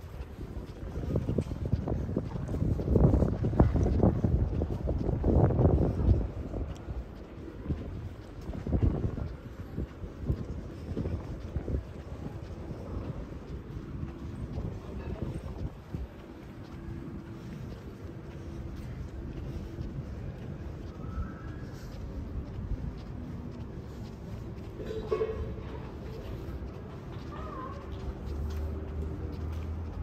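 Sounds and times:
faint street noise: 0.0s - 30.0s
wind buffeting microphone: 0.0s - 30.0s.

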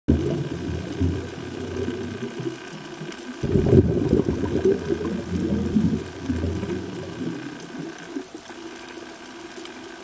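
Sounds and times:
low underwater rumble: 0.1s - 8.3s
faint steady whine: 0.1s - 10.0s.

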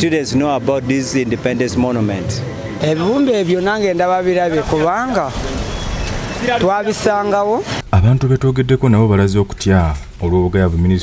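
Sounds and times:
man talking: 0.0s - 5.4s, 6.4s - 11.0s
minibus passing close by: 0.0s - 7.8s.

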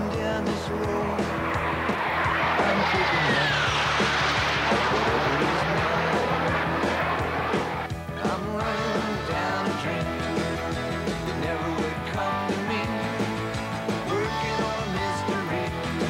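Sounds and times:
jet aircraft roar: 0.0s - 16.0s
rock music: 0.0s - 16.0s
whistling tone falling in pitch: 1.0s - 7.9s.

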